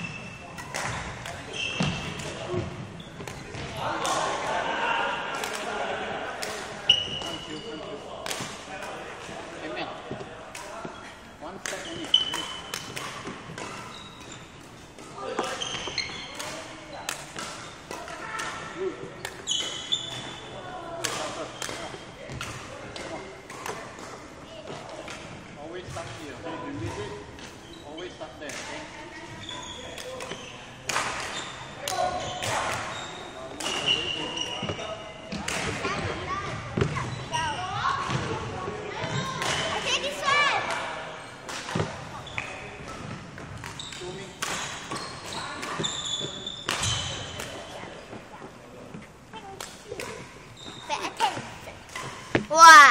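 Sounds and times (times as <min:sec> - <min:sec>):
shoes squeaking on wooden court: 0:00.0 - 0:03.8, 0:06.8 - 0:08.0, 0:10.0 - 0:20.6, 0:21.2 - 0:28.3, 0:28.9 - 0:40.4, 0:41.2 - 0:52.9.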